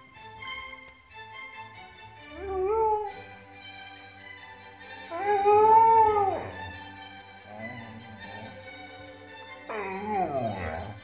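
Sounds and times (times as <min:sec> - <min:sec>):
classical music: 0:00.0 - 0:11.0
dog howling: 0:02.3 - 0:03.3, 0:05.0 - 0:06.9, 0:07.5 - 0:08.6, 0:09.6 - 0:11.0.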